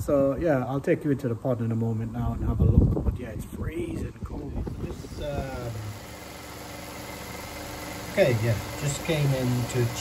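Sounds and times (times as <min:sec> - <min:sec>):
filtration machinery humming: 0:00.0 - 0:10.0.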